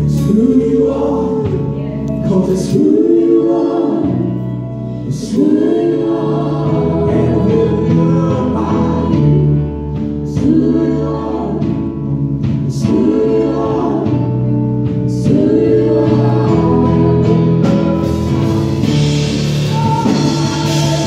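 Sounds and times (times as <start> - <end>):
band with keyboard and bass: 0.0 - 21.0
voices singing together: 0.0 - 21.0.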